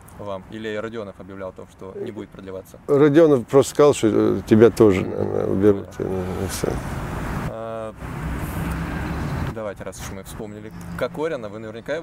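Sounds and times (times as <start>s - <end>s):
road traffic rushing: 1.4s - 12.0s.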